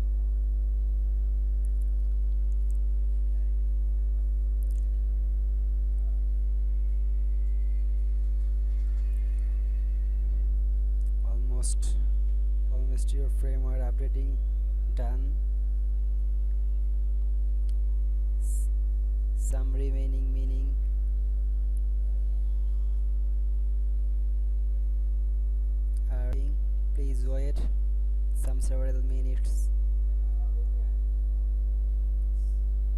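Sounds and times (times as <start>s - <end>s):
low electrical hum: 0.0s - 32.9s.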